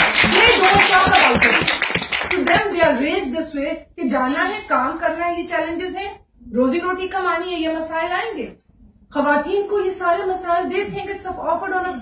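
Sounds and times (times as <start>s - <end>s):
audience applause: 0.0s - 2.7s
woman speaking: 0.2s - 1.7s, 2.3s - 12.0s.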